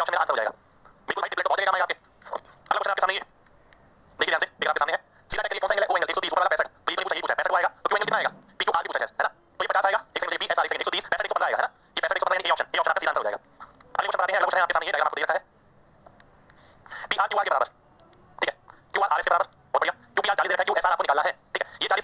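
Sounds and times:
man lecturing: 0.0s - 3.3s, 4.2s - 13.4s, 16.9s - 17.7s, 18.9s - 22.0s.

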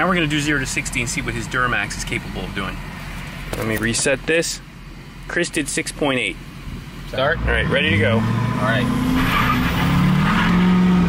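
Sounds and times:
diesel pickup engine accelerating: 0.0s - 11.0s
tires losing traction: 7.0s - 11.0s.

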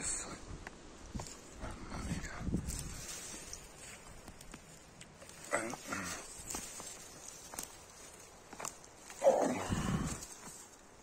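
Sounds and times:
twigs rustling and crackling: 0.6s - 11.0s
twigs snapping: 2.8s - 10.8s.

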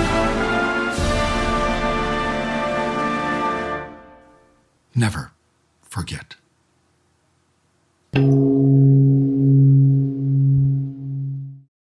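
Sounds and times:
deep gong strike: 8.2s - 11.7s.

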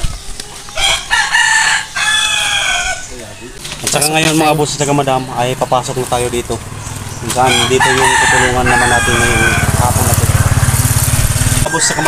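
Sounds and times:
rooster crowing: 0.8s - 3.1s, 7.4s - 10.2s.

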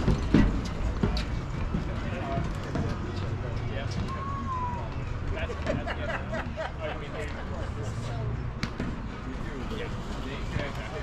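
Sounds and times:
faint players' voices: 0.0s - 11.0s.

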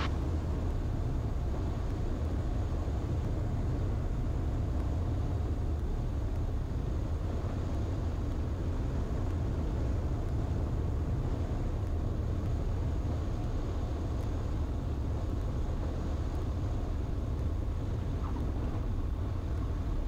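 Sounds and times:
wind rumbling on microphone: 0.0s - 20.0s.

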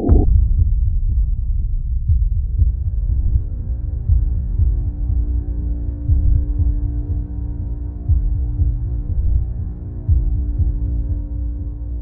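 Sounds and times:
deep bass pulses: 0.0s - 12.0s.

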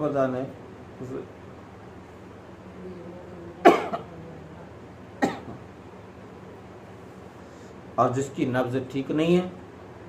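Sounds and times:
man coughing: 3.6s - 4.1s, 5.2s - 5.6s.

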